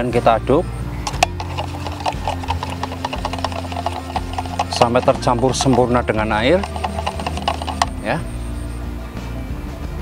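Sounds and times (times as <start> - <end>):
stick ticking against plastic cup: 1.1 - 8.0.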